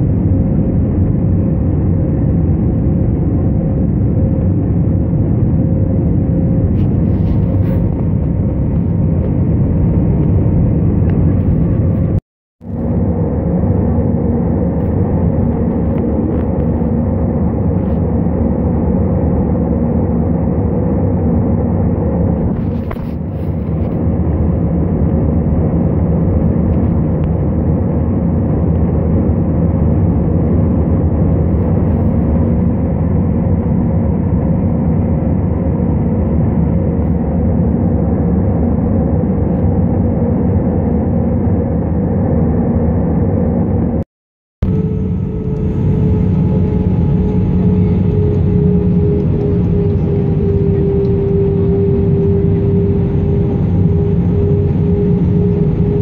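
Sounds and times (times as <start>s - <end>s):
jet airliner cabin drone: 0.0s - 56.0s.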